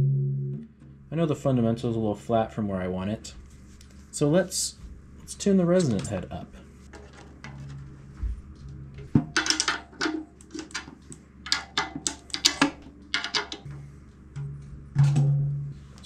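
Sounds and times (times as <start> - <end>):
low drum ring: 0.0 - 2.0, 13.6 - 16.0
taps and clicks on drum head: 11.5 - 13.7.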